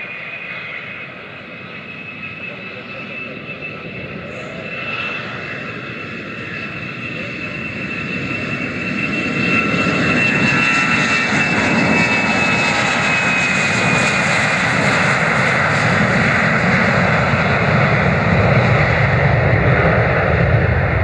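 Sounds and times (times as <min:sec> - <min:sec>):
jet engine fan whine: 0:00.0 - 0:21.0
jet engine roar: 0:00.0 - 0:21.0.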